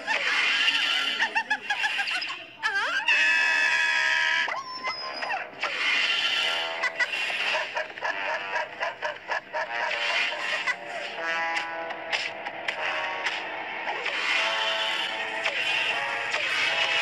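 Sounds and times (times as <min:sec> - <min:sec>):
cartoon sound effects: 0:00.0 - 0:08.4, 0:09.8 - 0:11.6, 0:13.3 - 0:17.0
lively background music: 0:03.8 - 0:17.0.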